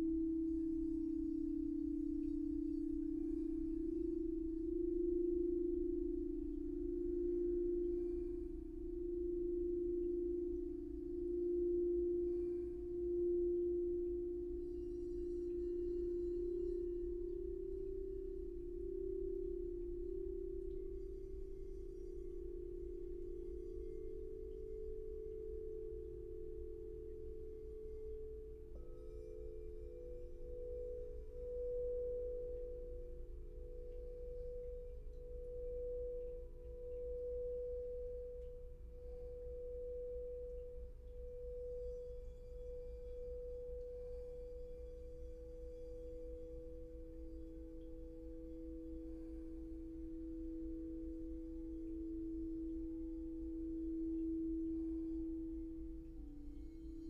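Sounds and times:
crystal singing bowl tone: 0:00.0 - 0:57.0
lower singing bowl tone: 0:00.0 - 0:57.0.

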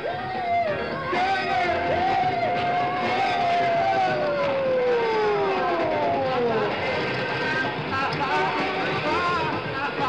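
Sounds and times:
police siren winding down: 0:01.9 - 0:06.8.

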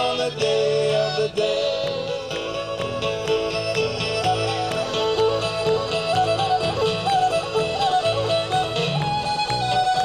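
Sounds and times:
cajun band playing: 0:00.0 - 0:10.0
fiddle and accordion melody: 0:00.0 - 0:10.0.

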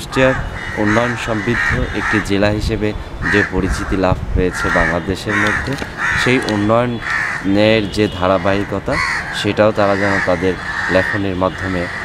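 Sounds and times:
man speaking: 0:00.0 - 0:11.9
crows cawing: 0:00.1 - 0:02.4, 0:03.2 - 0:12.0.

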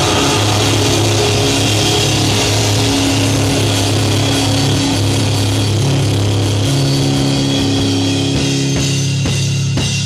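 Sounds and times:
distorted electric guitar chord: 0:00.0 - 0:09.6
bass guitar: 0:00.0 - 0:10.0.

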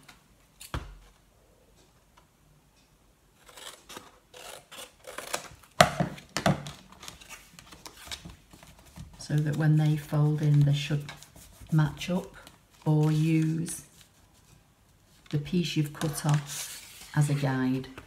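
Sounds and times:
paper rustling: 0:05.4 - 0:18.0.

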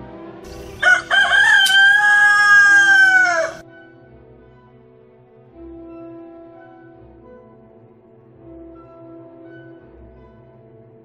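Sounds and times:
rooster crowing: 0:00.7 - 0:03.6.

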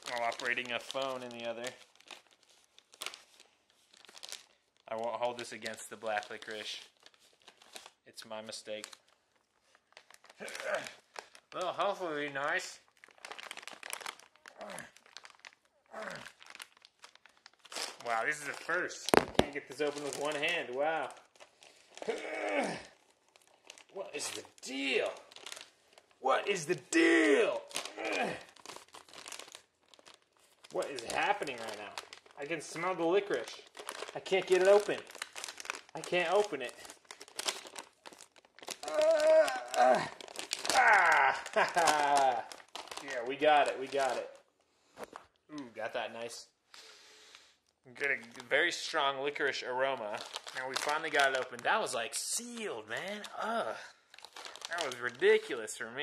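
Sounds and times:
paper bag crinkling and tearing: 0:00.0 - 0:44.4, 0:48.0 - 0:56.0
person speaking: 0:17.9 - 0:21.3, 0:23.9 - 0:25.3, 0:26.2 - 0:28.5, 0:30.7 - 0:35.1, 0:35.9 - 0:36.8, 0:38.8 - 0:44.4, 0:45.5 - 0:46.5, 0:47.9 - 0:54.0, 0:54.6 - 0:56.0.

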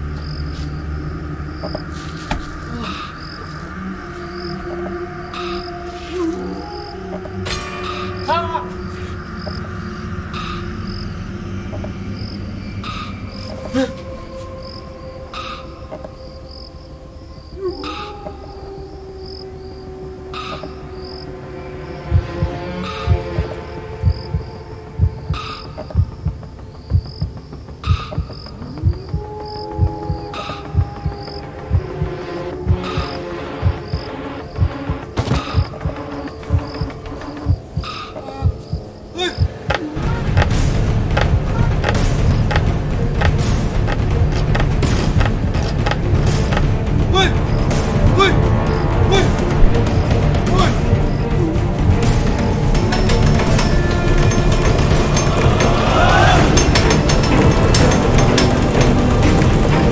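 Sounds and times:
low drone with sliding tones: 0:00.0 - 0:26.8, 0:27.7 - 0:59.9
low thudding pulse: 0:19.3 - 0:59.9.

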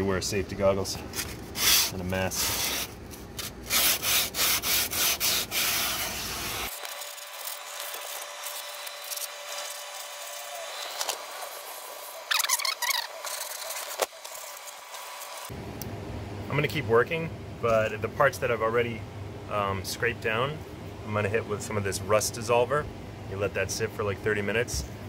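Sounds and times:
sandpaper scraping rusty steel: 0:01.5 - 0:15.5.

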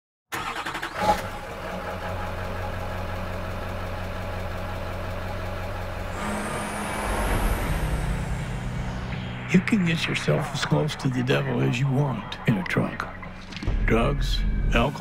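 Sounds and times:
truck engine starting and running: 0:00.3 - 0:13.8
high engine whine: 0:01.6 - 0:13.8.

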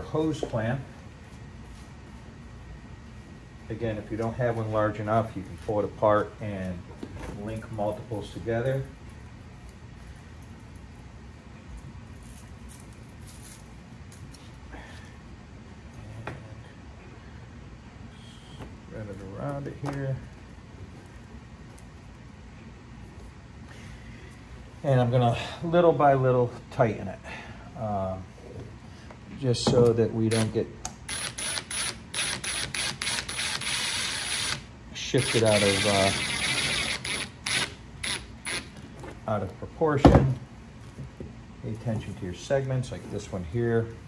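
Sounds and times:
low room hum: 0:00.0 - 0:44.0
cordless drill whirring and clicking: 0:31.1 - 0:38.7.

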